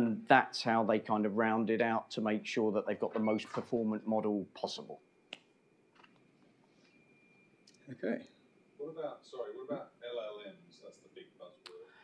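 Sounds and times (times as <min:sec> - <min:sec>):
faint steady high tone: 0:00.0 - 0:05.2, 0:06.7 - 0:12.0.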